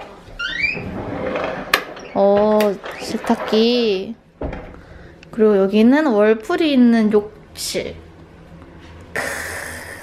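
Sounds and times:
door squeak: 0.4s - 1.4s.

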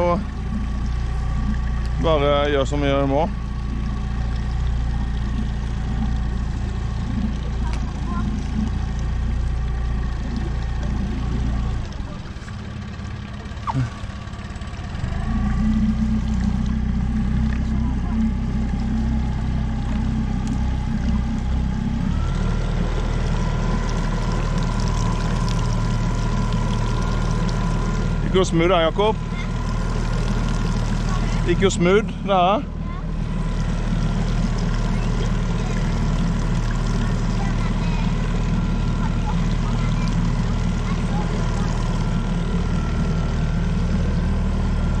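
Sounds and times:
outboard motor running: 0.0s - 45.0s.

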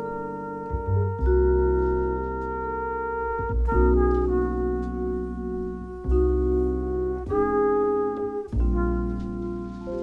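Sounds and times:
acoustic double bass: 0.0s - 10.0s.

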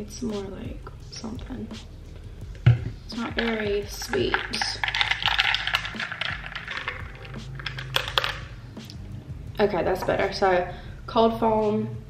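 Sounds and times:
ice cubes clinking in glass: 3.3s - 8.5s.

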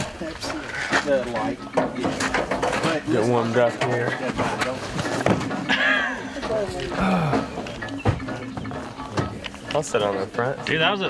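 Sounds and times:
men talking indistinctly: 0.0s - 11.0s.

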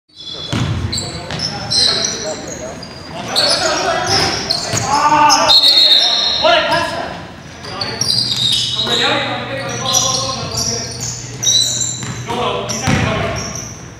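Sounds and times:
sneakers squeaking on court: 0.1s - 13.9s
basketball bouncing on hardwood: 0.5s - 1.4s, 12.8s - 13.3s
players shouting: 3.2s - 7.2s.

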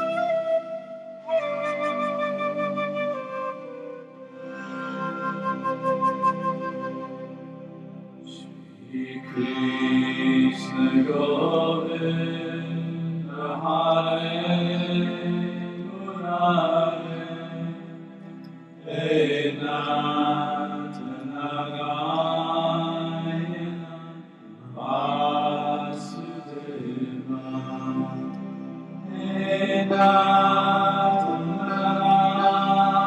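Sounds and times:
person singing devotional chant: 8.3s - 33.0s.

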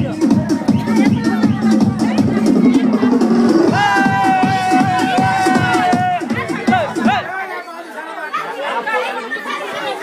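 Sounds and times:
loud music with deep beat: 0.0s - 7.3s
people chattering and calling: 0.0s - 10.0s.

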